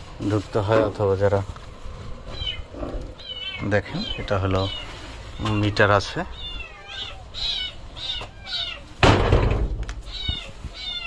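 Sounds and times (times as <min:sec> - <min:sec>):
animal high-pitched calls: 0:02.3 - 0:09.0, 0:10.0 - 0:11.0.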